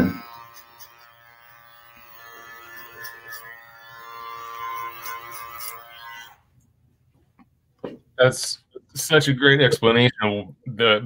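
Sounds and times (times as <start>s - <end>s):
electric hair clipper buzzing: 0.0s - 6.5s.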